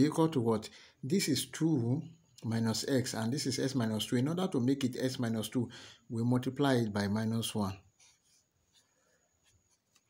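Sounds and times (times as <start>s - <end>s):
marker scratching on whiteboard: 7.9s - 10.0s.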